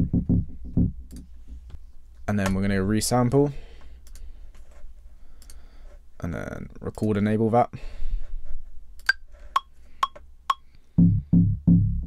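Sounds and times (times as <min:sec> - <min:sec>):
metronome clicks: 0:09.0 - 0:10.7.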